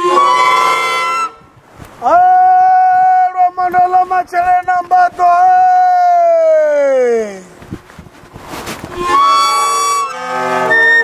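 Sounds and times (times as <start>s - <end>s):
reed pipes held chord: 0.0s - 1.6s, 8.9s - 11.0s.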